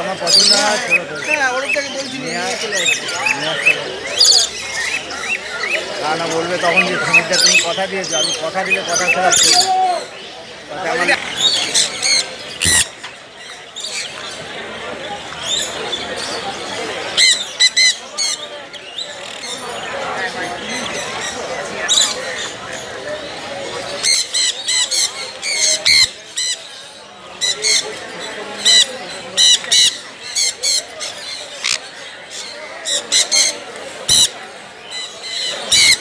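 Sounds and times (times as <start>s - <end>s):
parrots squawking harshly: 0.2s - 9.9s, 11.0s - 13.0s, 17.1s - 18.4s, 28.6s - 36.0s.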